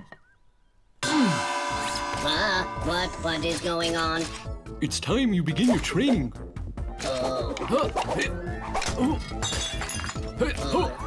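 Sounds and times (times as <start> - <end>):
background music: 1.0 - 11.0.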